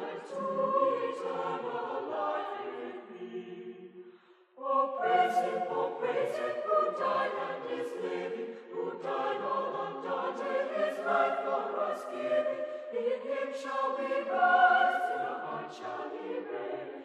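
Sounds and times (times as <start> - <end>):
choir singing a hymn in harmony: 0.0 - 17.0.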